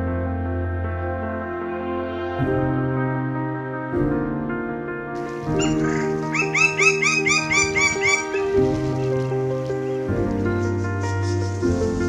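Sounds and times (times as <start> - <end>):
soft ambient music: 0.0 - 12.0
woodpecker calling: 5.2 - 10.1.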